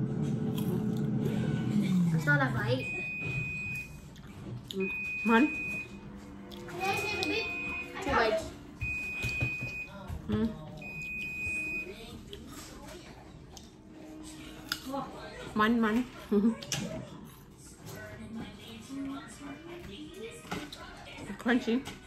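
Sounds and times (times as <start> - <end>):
electronic alarm beeping: 2.7 - 4.0, 4.8 - 6.0, 7.3 - 10.0, 10.8 - 12.0.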